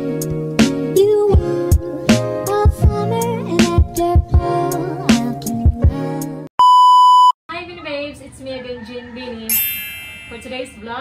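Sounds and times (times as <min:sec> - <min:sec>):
background music with steady beat: 0:00.0 - 0:06.5
test-tone beep: 0:06.6 - 0:07.4.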